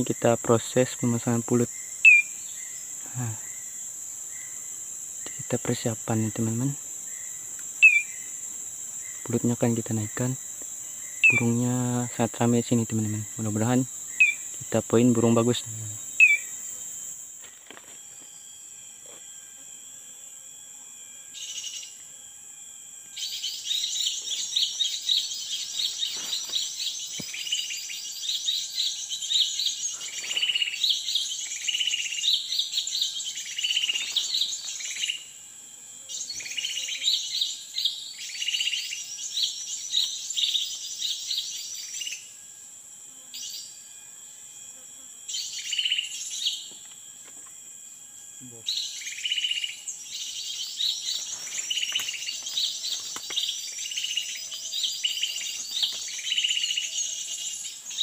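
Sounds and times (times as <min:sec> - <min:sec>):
birds chirping: 0:00.0 - 0:17.2, 0:23.2 - 0:35.3, 0:48.5 - 0:58.0
high buzzing: 0:00.0 - 0:58.0.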